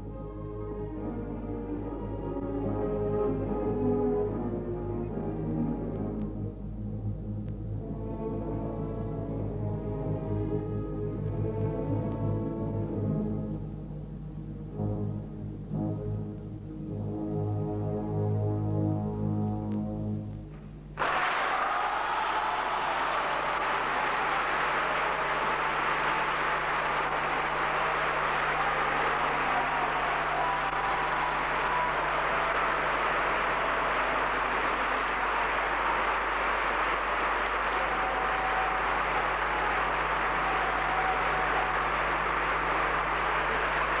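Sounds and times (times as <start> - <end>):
audience applauding: 21.0 - 44.0.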